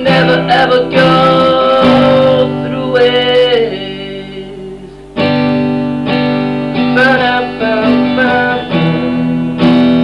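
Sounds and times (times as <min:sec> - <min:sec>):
acoustic guitar chords strummed: 0:00.0 - 0:10.0.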